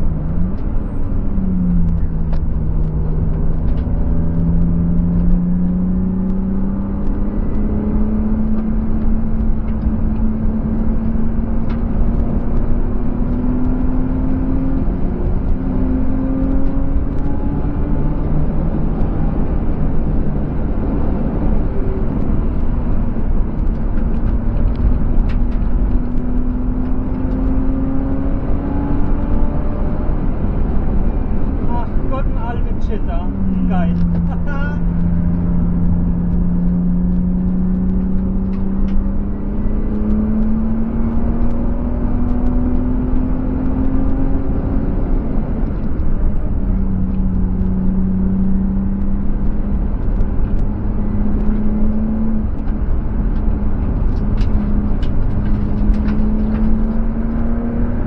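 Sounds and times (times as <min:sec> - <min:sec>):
car engine revving: 0:00.0 - 0:58.0
wind and road noise: 0:00.0 - 0:58.0.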